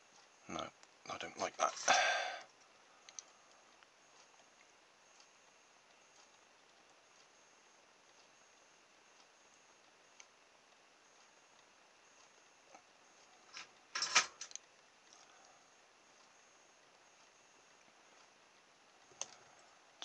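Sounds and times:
faint clicks: 2.4s - 13.8s, 14.4s - 20.0s
plastic and metal parts clattering: 13.6s - 14.6s.

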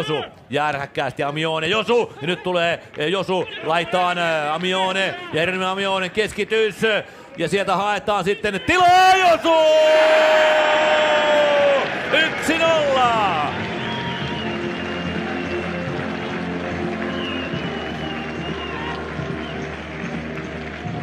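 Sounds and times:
crowd noise: 7.7s - 21.0s
commentator shouting: 8.2s - 13.6s
music playing: 11.4s - 21.0s.

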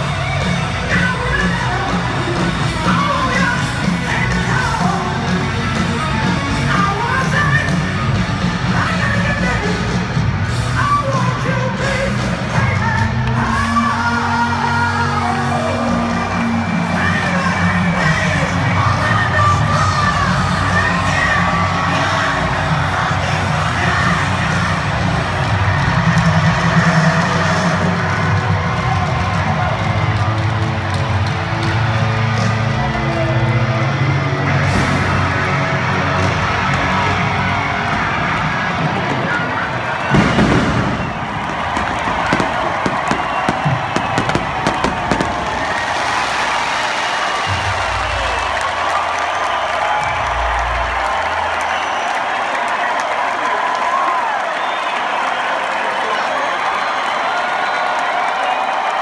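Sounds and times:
live rock band: 0.0s - 21.9s
crowd cheering: 0.0s - 59.0s
pyrotechnics bang: 40.1s - 46.0s.

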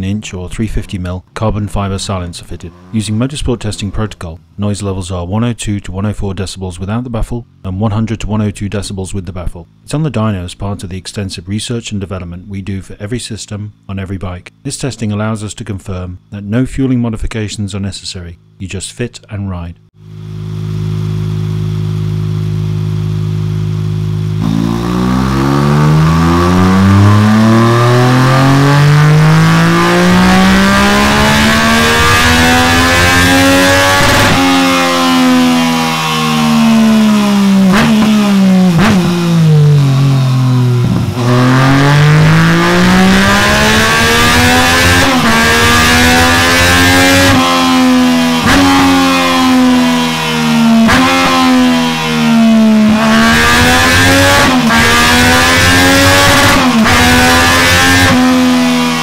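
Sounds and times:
exhaust cracks: 0.1s - 6.2s, 20.4s - 59.0s
motorcycle engine revving: 1.7s - 4.3s, 20.0s - 59.0s.

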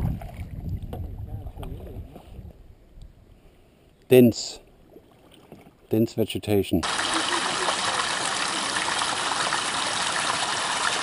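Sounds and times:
paddle splashing and dripping: 4.8s - 5.9s, 6.8s - 11.0s.

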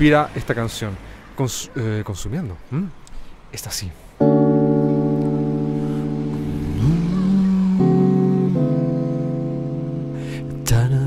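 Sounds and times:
electric guitar chords ringing: 4.2s - 11.0s.

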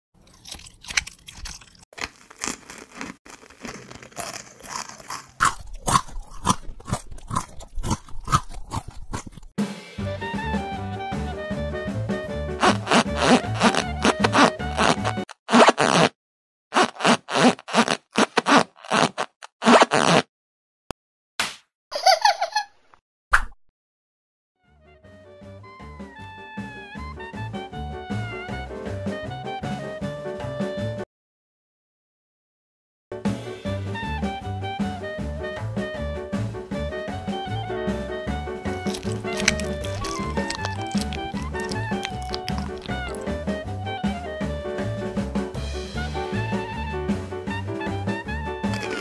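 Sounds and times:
crunchy chewing of food: 0.2s - 9.6s, 38.6s - 43.4s, 48.6s - 49.0s
high rubbery squeaks: 12.6s - 20.3s, 38.6s - 43.3s, 48.7s - 49.0s
sharp pop: 21.4s - 21.7s.

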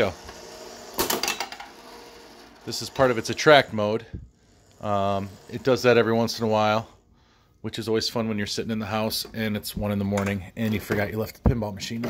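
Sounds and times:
pinball machine mechanical clack: 0.0s - 3.6s.

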